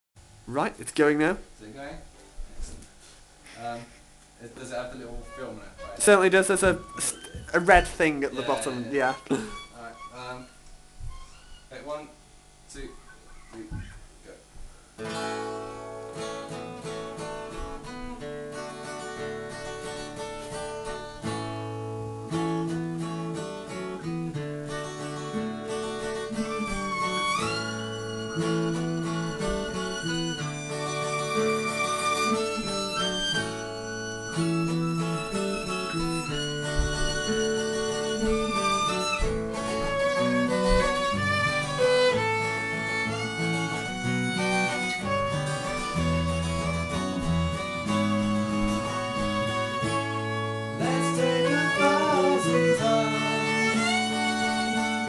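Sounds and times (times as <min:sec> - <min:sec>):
acoustic guitar: 0:02.4 - 0:11.8, 0:12.4 - 0:55.0
violin melody: 0:04.7 - 0:11.9, 0:15.1 - 0:55.0.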